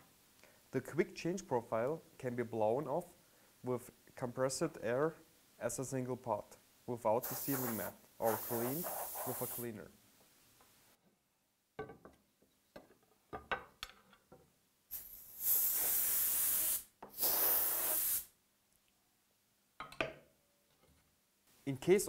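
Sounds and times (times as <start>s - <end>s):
compressed air blasts: 7.2s - 9.7s, 14.9s - 18.3s.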